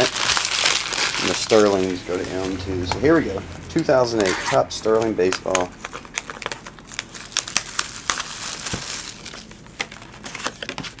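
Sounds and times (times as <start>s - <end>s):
plastic shrink-wrap crinkling and tearing: 0.0s - 2.6s, 4.9s - 11.0s.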